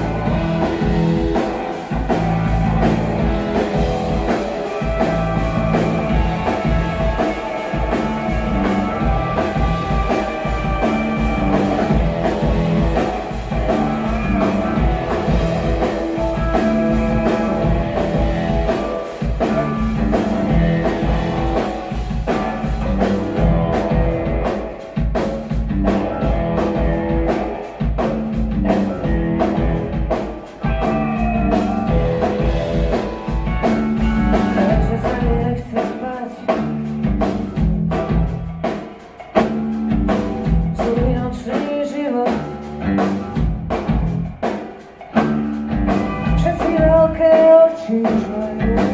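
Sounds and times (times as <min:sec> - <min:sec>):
amplified electric guitars: 0:00.0 - 0:48.9
drum kit steady beat: 0:00.0 - 0:48.9.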